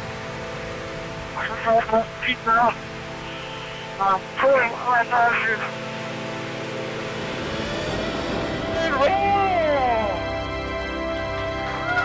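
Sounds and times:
radio hiss and hum: 0:01.3 - 0:06.2.

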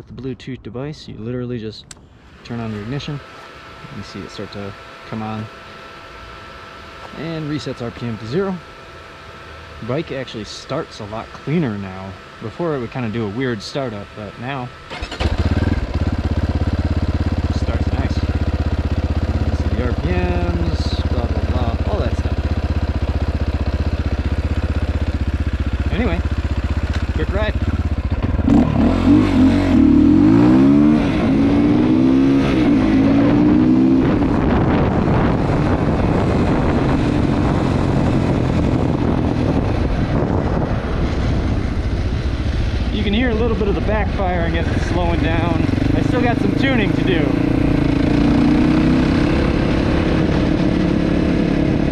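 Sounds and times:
motorcycle engine starting and idling: 0:01.6 - 0:51.9
exhaust backfire popping: 0:14.4 - 0:51.9.

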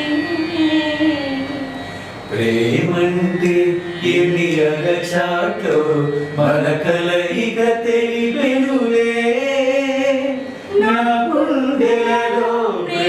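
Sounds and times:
group singing without instruments: 0:02.3 - 0:13.0.

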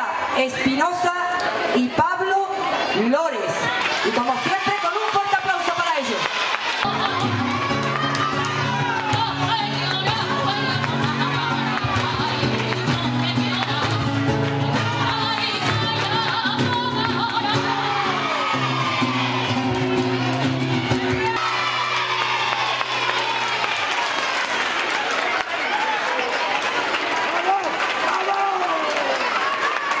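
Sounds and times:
voices: 0:00.0 - 0:22.3
rhythmic handclaps: 0:06.2 - 0:30.0
woman singing: 0:06.8 - 0:19.2
guitar chords: 0:06.9 - 0:23.6.

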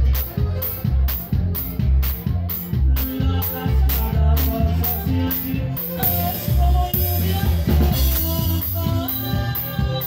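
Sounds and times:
live band playing dance music: 0:00.0 - 0:10.0.

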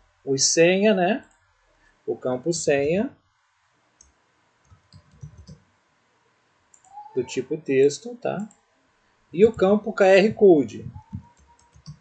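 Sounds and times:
computer mouse clicks: 0:04.0 - 0:05.6, 0:06.7 - 0:07.1, 0:10.8 - 0:12.0.

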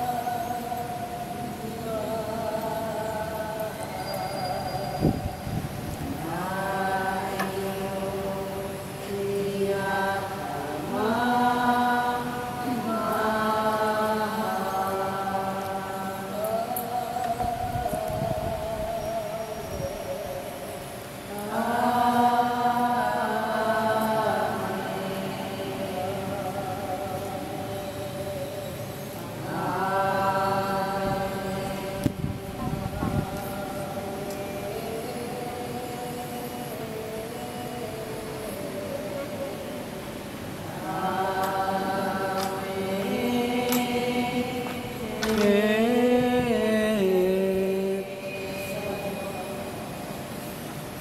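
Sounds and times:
congregation singing: 0:00.0 - 0:51.0.

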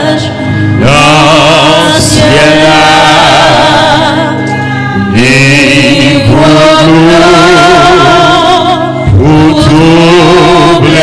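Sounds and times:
man singing into microphone: 0:00.0 - 0:11.0
sustained tones: 0:00.0 - 0:11.0.

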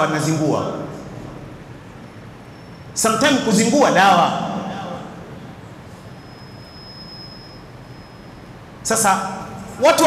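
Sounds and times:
low room noise: 0:00.0 - 0:10.0
high-pitched steady tone: 0:05.4 - 0:08.7.

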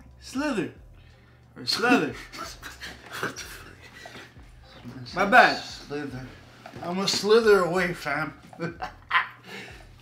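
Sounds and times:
man laughing: 0:08.4 - 0:09.9.

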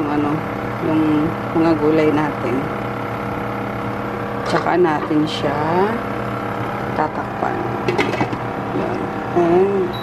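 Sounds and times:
induction cooktop hum: 0:00.0 - 0:10.0.

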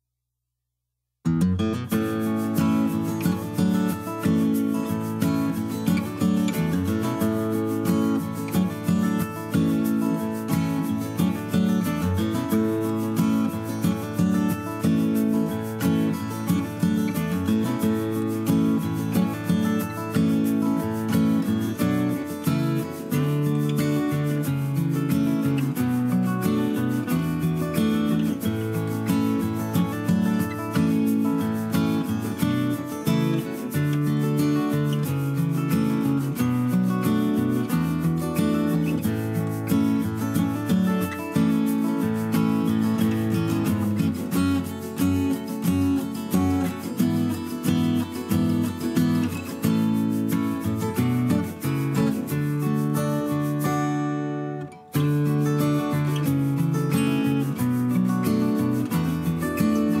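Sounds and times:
instrumental music with quick notes: 0:01.5 - 1:00.0.

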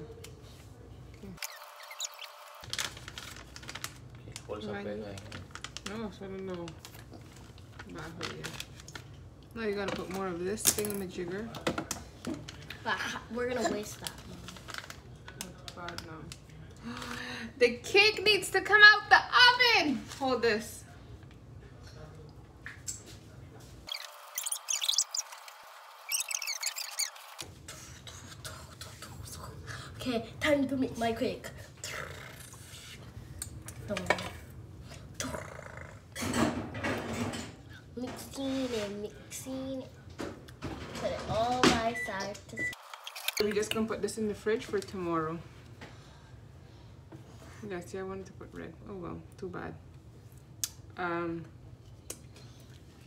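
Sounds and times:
high-pitched squeaky chirping: 0:01.5 - 0:02.4, 0:23.9 - 0:27.3
plastic bag crinkling: 0:01.6 - 0:09.0, 0:13.9 - 0:15.4.

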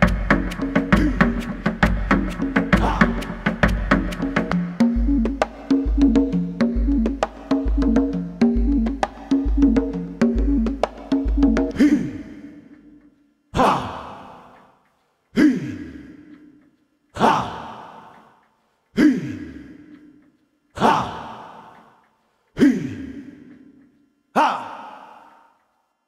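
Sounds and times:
synthesizer percussive hits: 0:00.0 - 0:11.8.

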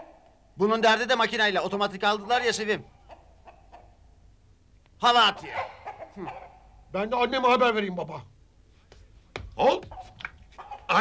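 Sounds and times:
hens clucking: 0:02.1 - 0:04.0, 0:05.4 - 0:06.8, 0:09.8 - 0:11.0.

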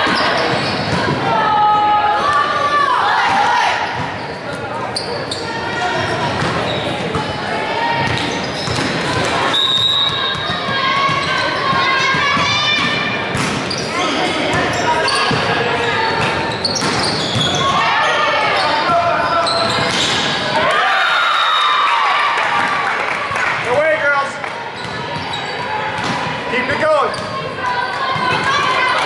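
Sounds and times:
voices echoing in gymnasium: 0:00.0 - 0:29.0.

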